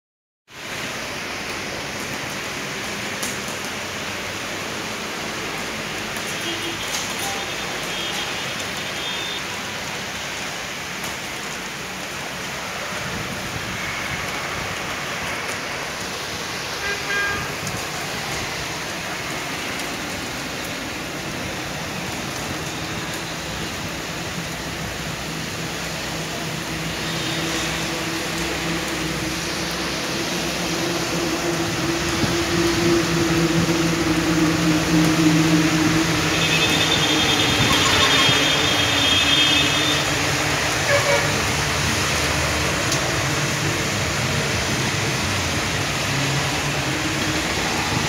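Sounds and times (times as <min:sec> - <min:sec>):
heavy rain pouring: 0:00.5 - 0:48.0
traffic on a wet road: 0:00.5 - 0:48.0.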